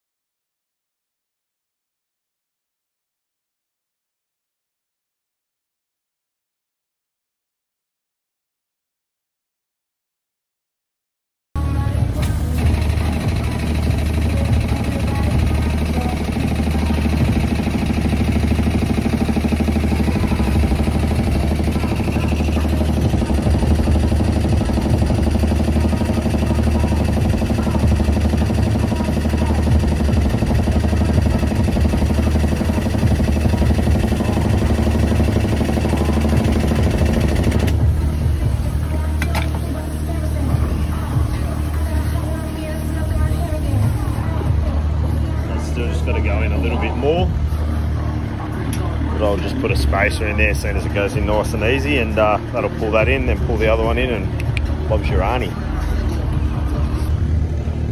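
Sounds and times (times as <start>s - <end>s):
machine drone with low hum: 11.6s - 57.9s.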